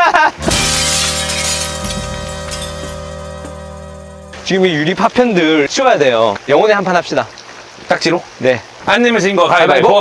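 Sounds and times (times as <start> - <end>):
glass shattering: 0.4 - 5.0
held musical chord: 0.4 - 6.3.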